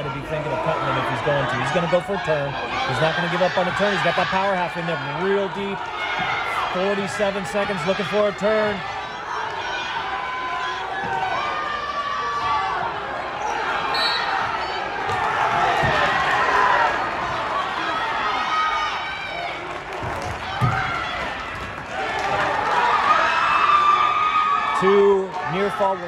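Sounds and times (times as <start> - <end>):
crowd shouting in a gym: 0.0 - 26.0.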